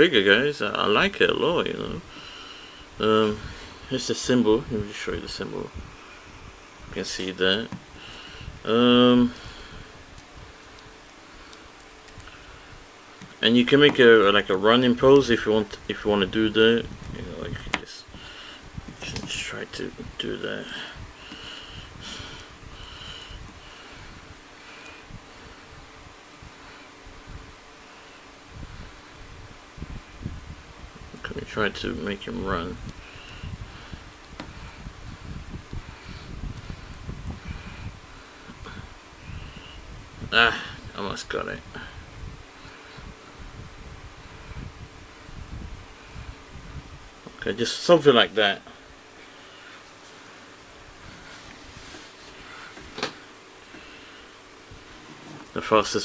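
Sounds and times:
microphone hiss: 0:00.0 - 0:56.0
soft rustles of handling: 0:16.3 - 0:19.9, 0:49.1 - 0:54.0, 0:54.7 - 0:56.0.

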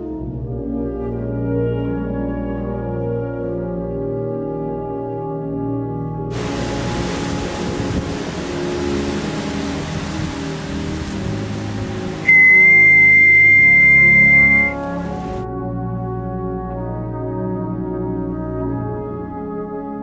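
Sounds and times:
orchestral brass music: 0:00.0 - 0:20.0
steady rushing noise: 0:06.3 - 0:15.4
high whistle blast: 0:12.2 - 0:15.3.

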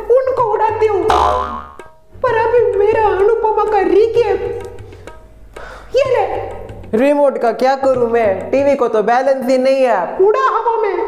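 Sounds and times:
music: 0:00.0 - 0:11.0
cartoon ringing twang: 0:01.1 - 0:01.9.

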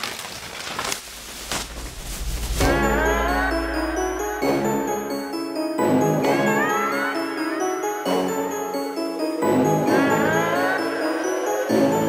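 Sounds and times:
plastic bags rustling and crinkling: 0:00.0 - 0:02.8.

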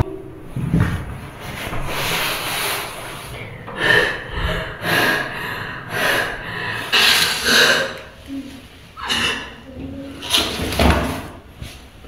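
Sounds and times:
girl gasping for breath: 0:03.7 - 0:08.2.

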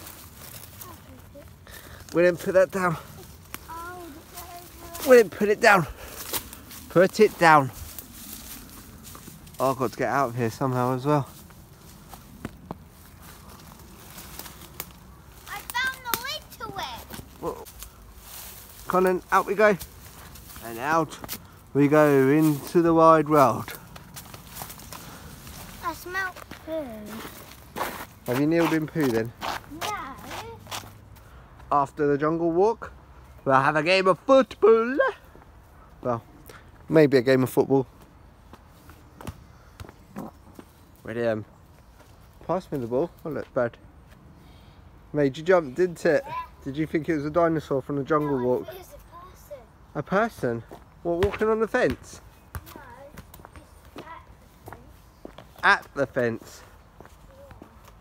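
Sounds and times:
footsteps in dry leaves: 0:00.0 - 0:31.0
twigs snapping: 0:13.6 - 0:16.3
footsteps on tarmac: 0:23.6 - 0:31.7, 0:52.6 - 0:58.0
football being kicked: 0:51.2 - 0:53.3.

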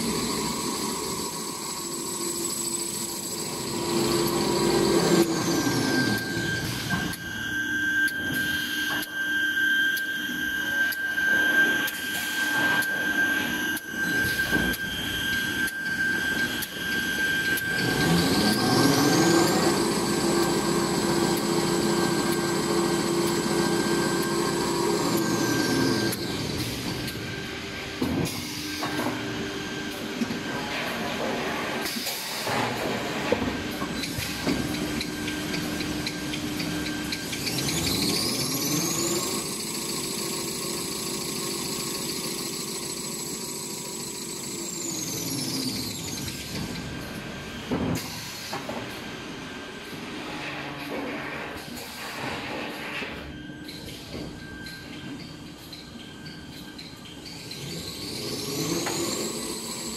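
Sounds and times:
machine drive whine: 0:00.0 - 0:59.9.

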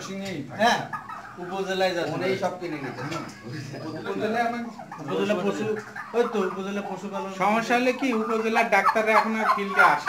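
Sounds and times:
turkeys calling softly: 0:00.0 - 0:10.0.

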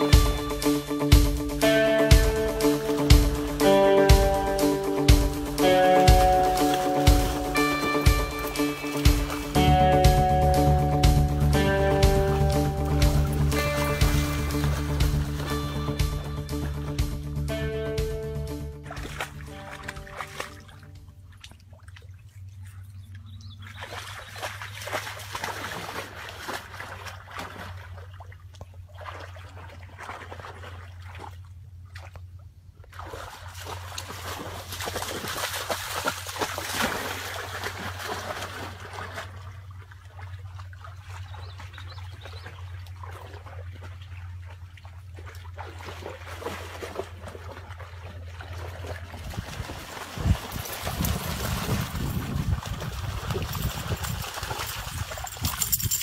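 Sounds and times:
dog splashing through water: 0:05.0 - 0:09.7, 0:12.0 - 0:16.8, 0:18.8 - 0:22.8, 0:23.5 - 0:56.0.

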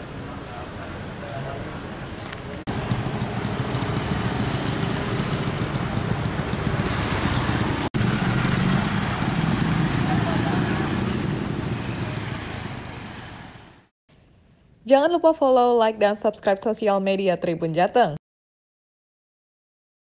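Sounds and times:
cars passing: 0:00.0 - 0:13.9
motorcycles passing: 0:00.5 - 0:13.9.

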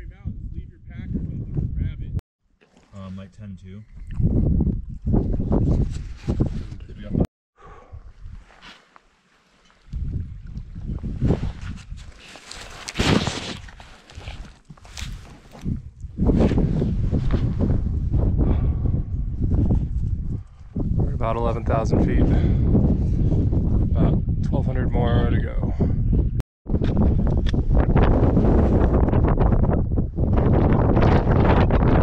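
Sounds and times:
wind buffeting microphone: 0:00.0 - 0:02.2, 0:03.6 - 0:07.2, 0:09.8 - 0:12.2, 0:15.0 - 0:32.0.

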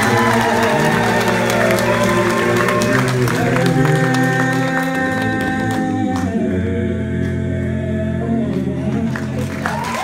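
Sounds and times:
men singing in harmony: 0:00.0 - 0:09.8.

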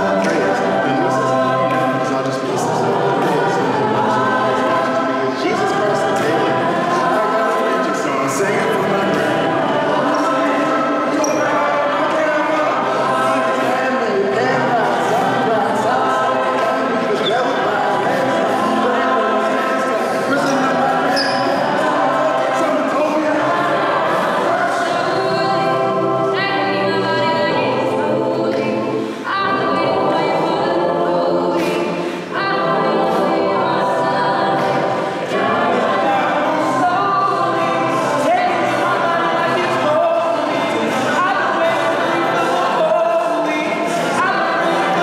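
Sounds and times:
mixed choir singing a cappella: 0:00.0 - 0:45.0.

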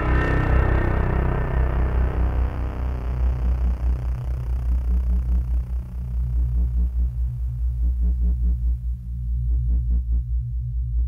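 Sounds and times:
pulsing synthesizer bass: 0:00.0 - 0:11.0
sustained low synth tones: 0:00.0 - 0:11.0.

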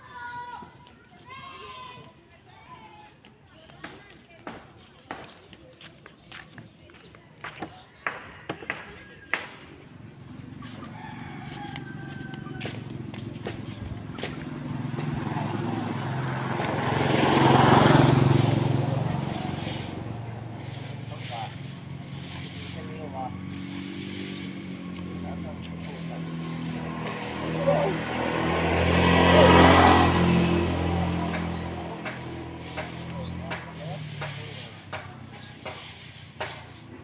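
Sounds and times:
vehicles passing by: 0:00.0 - 0:37.0
low engine hum: 0:09.7 - 0:37.0.

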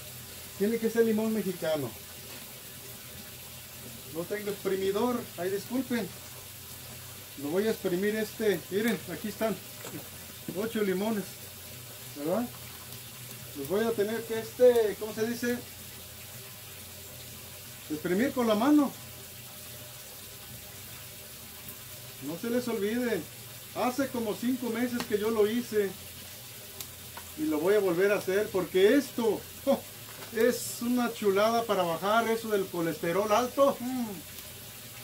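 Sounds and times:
steady background hiss: 0:00.0 - 0:35.0.

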